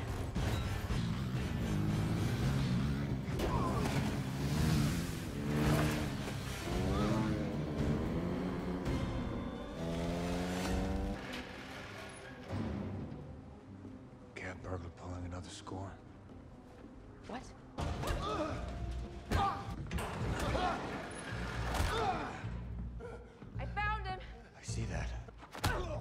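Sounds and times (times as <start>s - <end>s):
dramatic music score: 0.0s - 26.0s.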